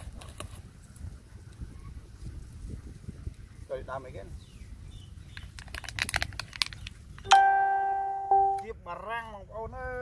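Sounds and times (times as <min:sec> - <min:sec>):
bell-like musical note: 0:07.3 - 0:08.6.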